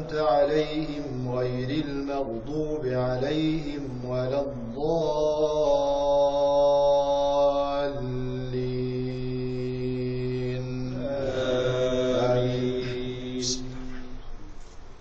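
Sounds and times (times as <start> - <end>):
man chanting through microphone: 0.0 - 14.5.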